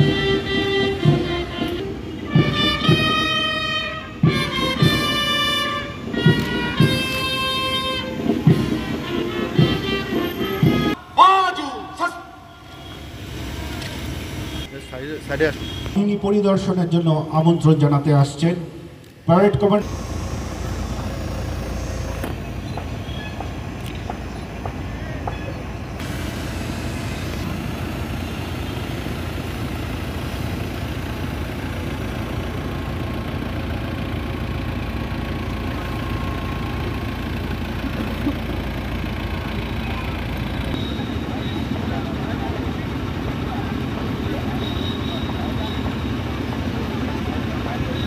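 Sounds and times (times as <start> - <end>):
jeep engine rumbling: 0.0 - 48.0.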